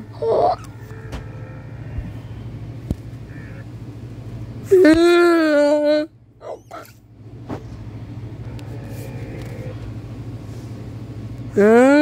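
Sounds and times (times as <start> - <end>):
low rumbling hum: 0.0 - 12.0.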